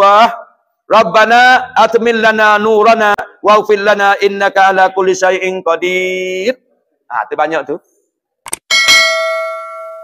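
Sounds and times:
bell ding: 0:08.7 - 0:10.0.

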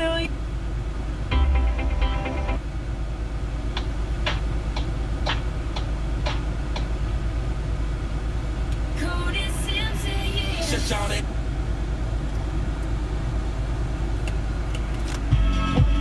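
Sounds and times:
broadcast speech on car speakers: 0:00.0 - 0:00.4, 0:09.0 - 0:11.3
low car hum: 0:00.0 - 0:16.0
music on car speakers: 0:01.3 - 0:02.7, 0:03.6 - 0:07.2, 0:09.0 - 0:11.2, 0:15.1 - 0:16.0.

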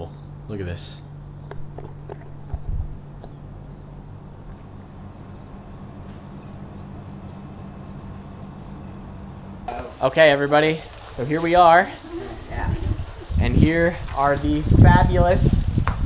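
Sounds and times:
faint pulsing calls: 0:00.0 - 0:13.7
insects chirring: 0:00.0 - 0:15.8
low steady hum: 0:00.0 - 0:16.0
thumps: 0:01.4 - 0:03.5.

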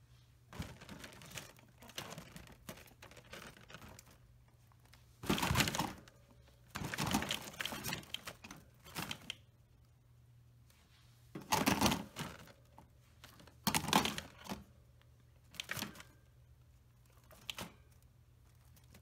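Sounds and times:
rabbit rattling wire cage: 0:06.7 - 0:09.4.

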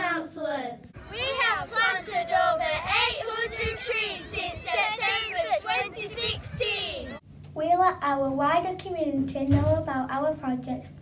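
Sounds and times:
girls chanting in unison: 0:01.1 - 0:07.2.

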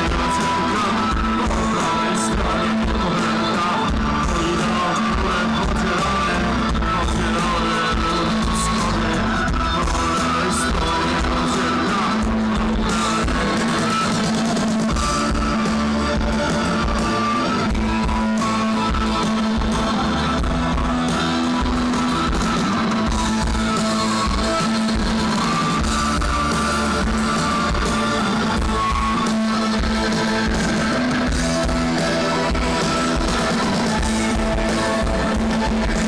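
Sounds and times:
live rock band playing: 0:00.0 - 0:36.0.

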